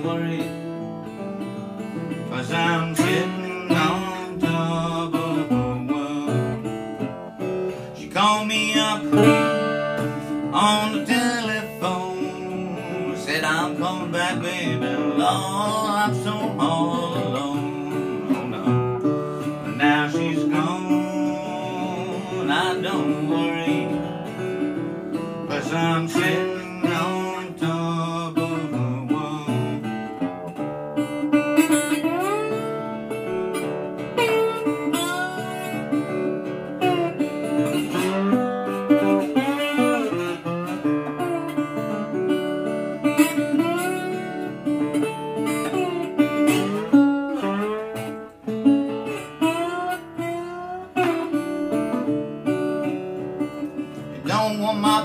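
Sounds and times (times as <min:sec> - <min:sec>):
fingerpicked bass notes: 0:00.0 - 0:55.0
slide guitar notes: 0:00.0 - 0:55.0.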